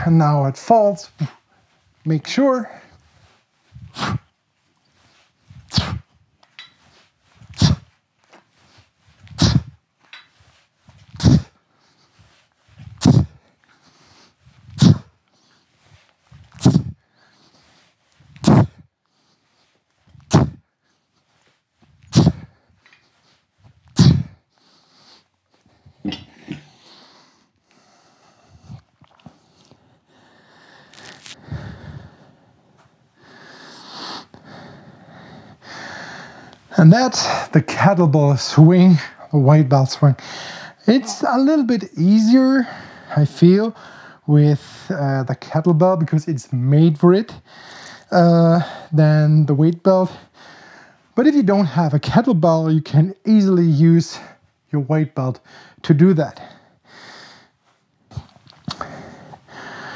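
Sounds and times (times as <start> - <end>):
sharp forceful exhalations: 2.6 - 4.3, 5.0 - 8.0, 8.6 - 9.8, 11.1 - 15.2, 15.8 - 18.8, 20.2 - 20.6, 22.0 - 22.6, 24.0 - 25.3, 25.9 - 32.6, 40.2 - 41.7
man breathing hard: 11.1 - 37.4, 40.2 - 41.3, 42.6 - 44.3, 47.4 - 49.0, 50.1 - 51.2, 55.4 - 55.8, 56.4 - 59.9.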